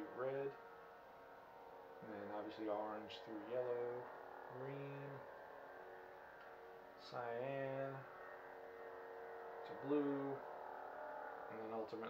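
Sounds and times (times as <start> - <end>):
faint electronic hum: 0.0 - 12.0.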